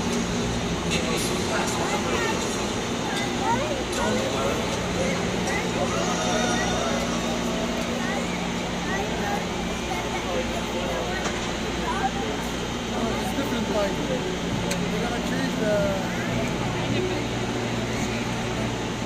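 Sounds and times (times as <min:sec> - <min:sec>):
crowd chattering and calling out: 0:00.0 - 0:19.0
low mechanical hum: 0:00.0 - 0:19.0.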